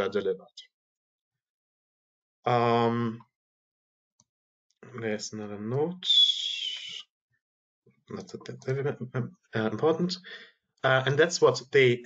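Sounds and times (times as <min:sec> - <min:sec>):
high-pitched hissy whistling tone: 0:06.0 - 0:07.0.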